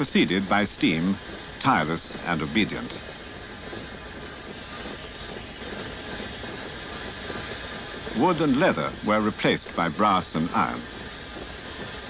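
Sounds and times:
steam engine hissing and rumbling: 0.0 - 12.0.

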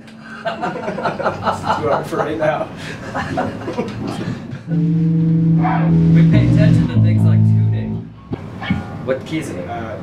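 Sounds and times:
laughter: 0.2 - 4.7
electric guitar note held: 4.7 - 8.8.

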